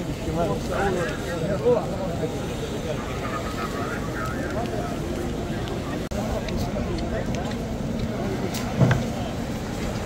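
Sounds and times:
crowd murmuring: 0.0s - 10.0s.

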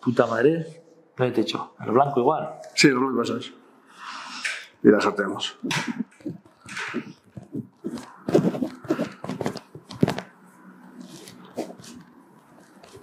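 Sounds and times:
marker pen rubbing on fabric: 5.9s - 10.2s, 11.0s - 13.0s
fabric rustling: 6.2s - 13.0s.

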